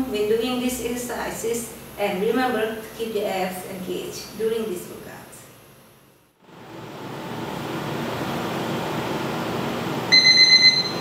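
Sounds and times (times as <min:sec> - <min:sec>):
loud electronic beep: 0:10.1 - 0:11.0.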